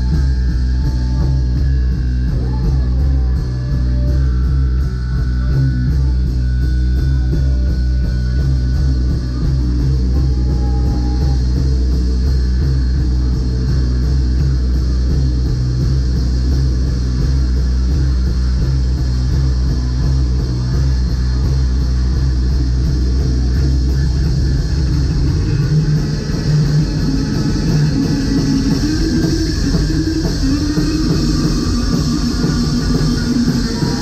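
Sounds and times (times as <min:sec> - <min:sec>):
bass guitar: 0:00.0 - 0:34.0
drums: 0:00.0 - 0:34.0
electric guitar: 0:00.0 - 0:34.0.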